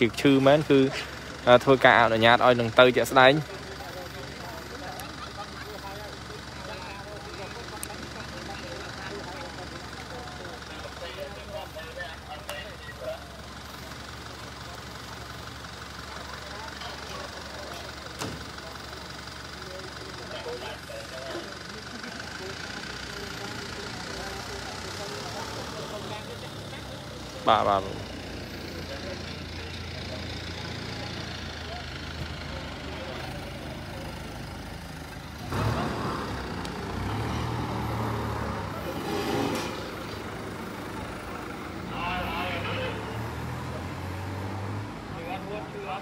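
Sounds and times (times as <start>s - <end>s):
people talking: 0.0s - 15.0s, 16.0s - 44.0s, 45.0s - 46.0s
vehicles passing: 0.0s - 46.0s.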